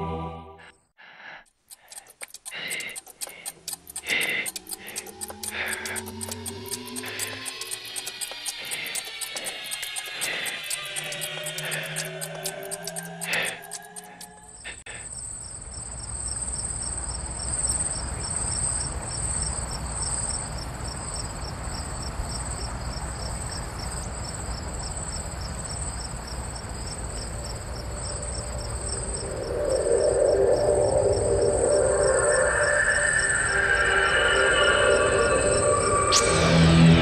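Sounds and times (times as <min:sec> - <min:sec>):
music: 0:00.0 - 0:00.7, 0:05.3 - 0:14.4, 0:29.0 - 0:37.0
crickets chirping: 0:01.7 - 0:37.0.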